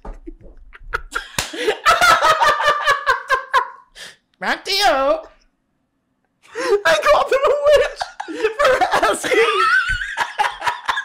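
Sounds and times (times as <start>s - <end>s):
man laughing high-pitched: 6.6s - 11.0s.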